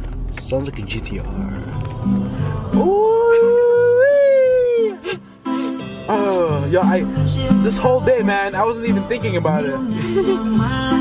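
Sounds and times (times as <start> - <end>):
background music with bass line: 1.2 - 11.0
man's high-pitched ooh: 2.7 - 5.0.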